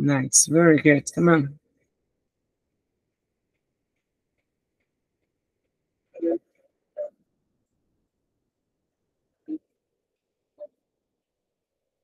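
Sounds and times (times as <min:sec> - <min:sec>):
faint regular ticks: 0:03.0 - 0:06.8.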